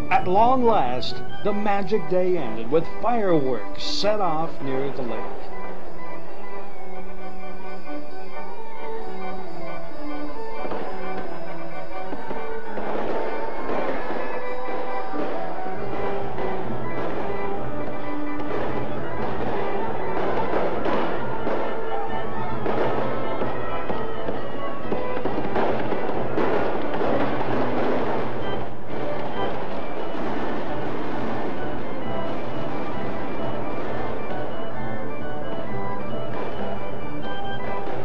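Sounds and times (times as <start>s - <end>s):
fireworks exploding: 0.0s - 38.0s
music with held notes: 0.0s - 38.0s.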